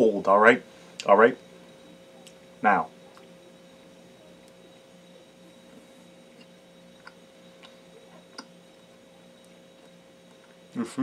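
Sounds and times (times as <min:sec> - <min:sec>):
faint steady hum: 0:00.0 - 0:11.0
chewing food with soft clicks: 0:06.3 - 0:08.5, 0:09.4 - 0:10.6.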